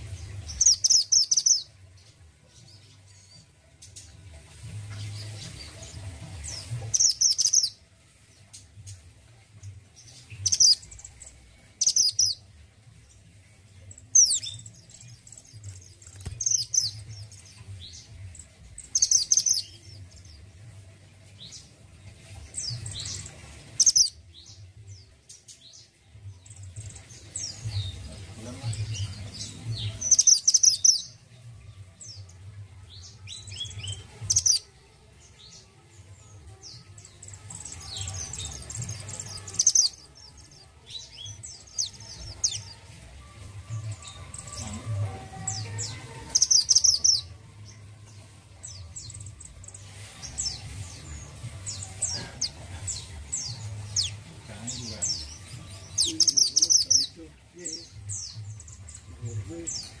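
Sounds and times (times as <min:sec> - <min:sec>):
bird chirping song: 0:00.0 - 1:00.0.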